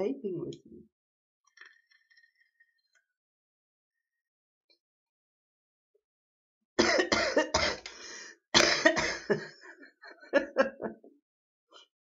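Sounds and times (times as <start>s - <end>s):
woman coughing: 6.8s - 7.9s, 8.6s - 9.5s.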